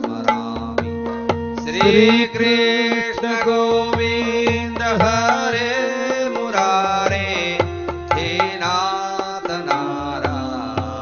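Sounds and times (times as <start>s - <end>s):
keyboard accompaniment: 0.0s - 11.0s
hand drum strokes: 1.7s - 2.6s
person singing long note: 1.7s - 2.6s.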